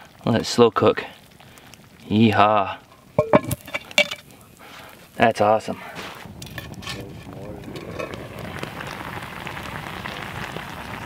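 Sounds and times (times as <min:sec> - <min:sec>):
metal lid clinking against pot: 0:03.2 - 0:04.2.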